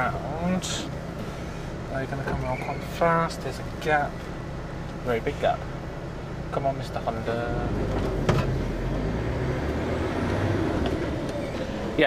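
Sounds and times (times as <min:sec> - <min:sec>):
diesel engine rumble under load: 0:00.0 - 0:12.0.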